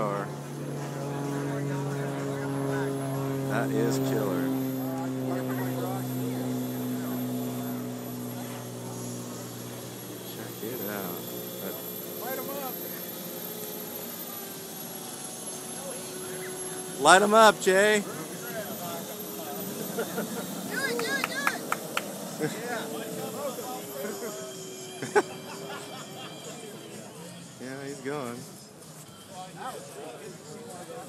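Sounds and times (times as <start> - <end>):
turbine engine idling hum: 0.0 - 28.0
higher engine tone: 0.0 - 28.8
crowd chatter: 0.0 - 31.0.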